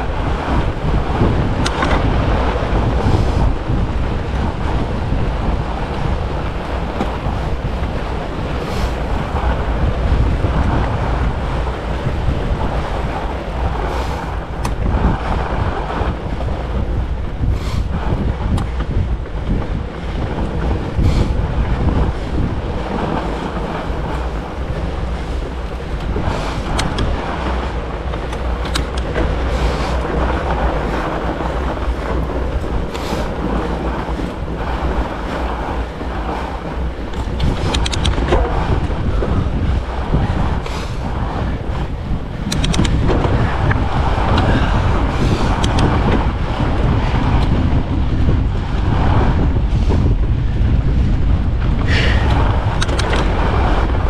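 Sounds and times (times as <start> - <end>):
bike tyre and drivetrain noise: 0.0 - 54.0
wind buffeting microphone: 0.0 - 54.0
sharp clicks: 26.7 - 27.1, 28.3 - 29.2, 37.2 - 38.2, 42.4 - 43.0, 45.6 - 45.9, 52.8 - 53.3.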